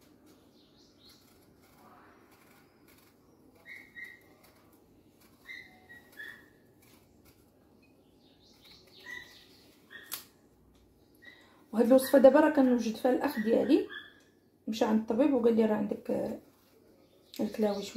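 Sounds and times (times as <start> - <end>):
knife scraping apple peel: 0.8 - 7.6.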